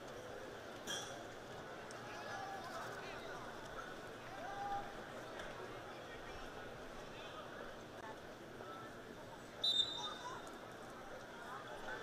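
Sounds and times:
low crowd voices: 0.0s - 12.0s
referee's whistle blast: 9.6s - 10.2s.

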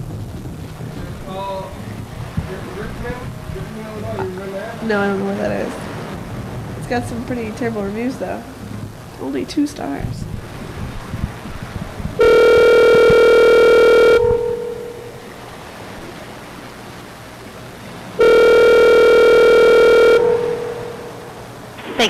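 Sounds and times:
telephone ringback tone: 12.2s - 15.2s, 18.2s - 21.2s.

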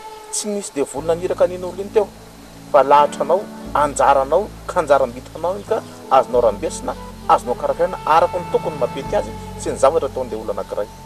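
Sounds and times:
quiet background music: 0.0s - 11.0s
man speaking: 0.4s - 2.1s, 2.8s - 11.0s.

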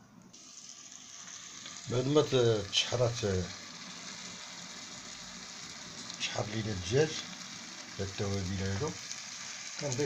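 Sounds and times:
chicken sizzling in a pot: 0.3s - 10.0s.

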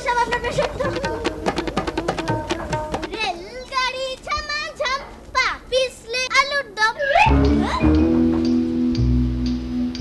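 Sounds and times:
child calling out: 6.2s - 7.9s.

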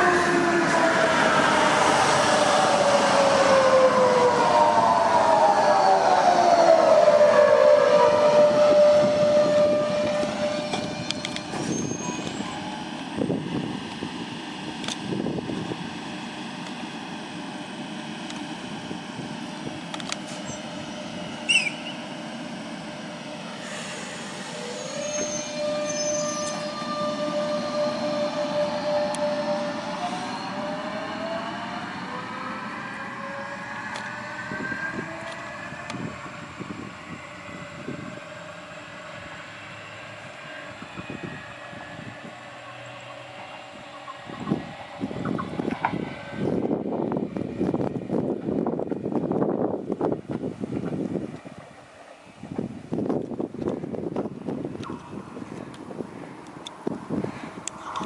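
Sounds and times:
electric train motor whine: 0.0s - 50.2s
train wheels rumbling: 0.0s - 58.0s
wind buffeting microphone: 0.1s - 16.0s, 33.8s - 42.8s, 43.5s - 58.0s.

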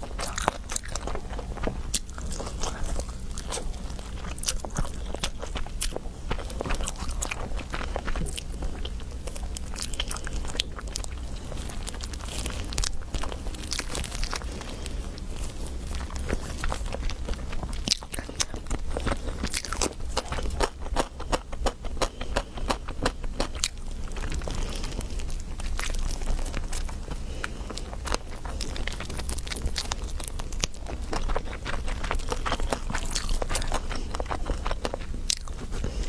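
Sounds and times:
low hum: 0.0s - 36.0s
person chewing food: 0.0s - 36.0s.

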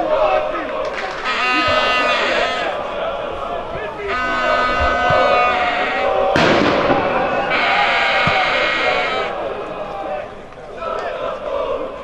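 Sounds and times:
long held call: 0.0s - 11.2s
players and spectators shouting: 0.0s - 12.0s.

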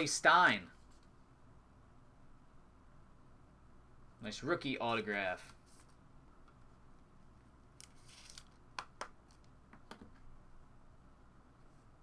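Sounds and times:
card sleeves rustling: 7.8s - 8.7s.

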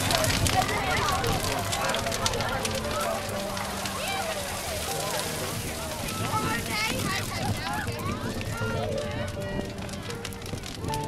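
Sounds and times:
bonfire crackling and popping: 0.0s - 11.0s
crowd talking: 0.0s - 11.0s.

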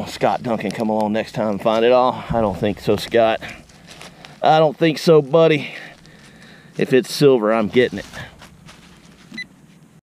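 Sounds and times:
rustling and scraping leaf litter: 0.0s - 9.9s.

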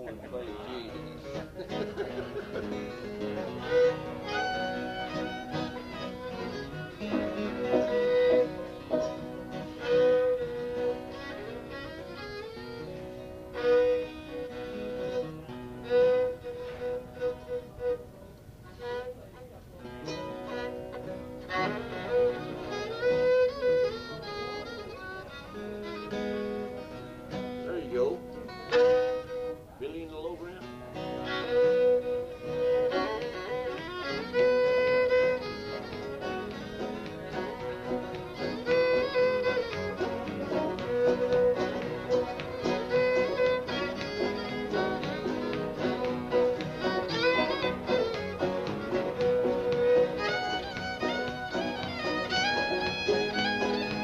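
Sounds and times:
fiddle tune: 0.0s - 54.0s
guitar accompaniment: 0.0s - 54.0s.

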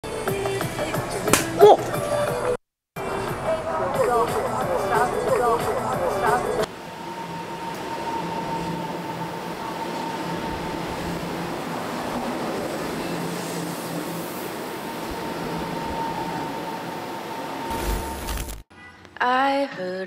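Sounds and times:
electric train rumbling: 3.0s - 18.6s
static noise burst: 17.6s - 18.6s.

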